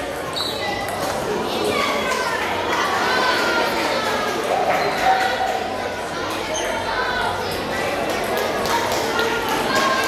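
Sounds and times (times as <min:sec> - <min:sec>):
crowd chatter in echoing hall: 0:00.0 - 0:10.0.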